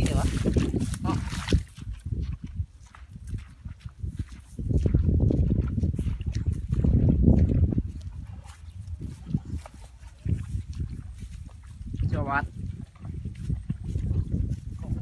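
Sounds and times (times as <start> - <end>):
footsteps rustling through dry stubble: 0.0 - 15.0
wind buffeting microphone: 0.0 - 15.0.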